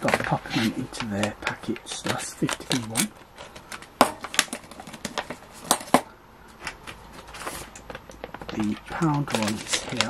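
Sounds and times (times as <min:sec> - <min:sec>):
plastic pouch rustling: 0:00.0 - 0:10.0.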